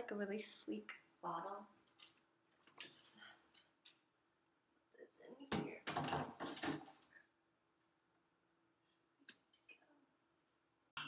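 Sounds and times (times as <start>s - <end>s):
plastic bottle clattering on shelf: 5.5s - 7.0s.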